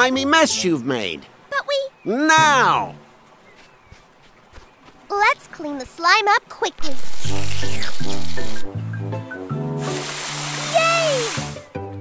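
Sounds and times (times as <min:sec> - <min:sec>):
background music: 0:06.8 - 0:12.0
hose jet hissing: 0:09.8 - 0:11.7.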